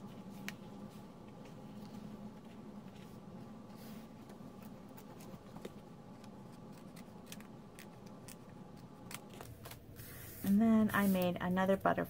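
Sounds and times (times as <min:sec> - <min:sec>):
paper rustling: 0:00.2 - 0:11.3
scissors cutting paper: 0:04.9 - 0:09.6.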